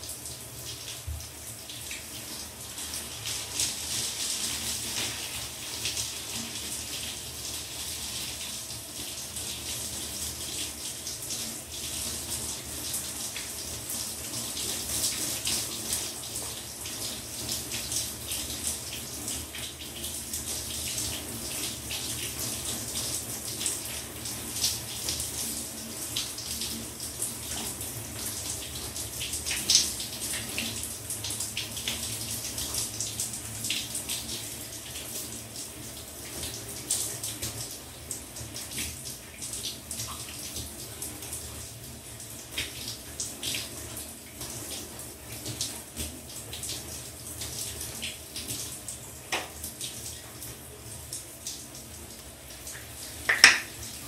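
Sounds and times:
shower water spattering: 0:52.7 - 0:54.0
sharp splash: 0:53.3 - 0:53.7.

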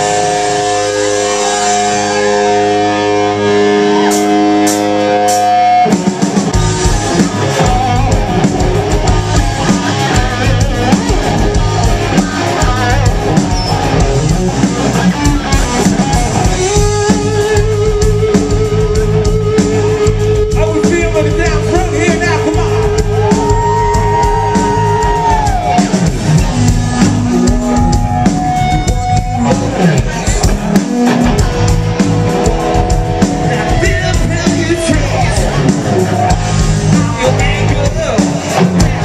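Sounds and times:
guitar chord ringing: 0:00.0 - 0:05.8
live hard rock band: 0:00.0 - 0:39.0.

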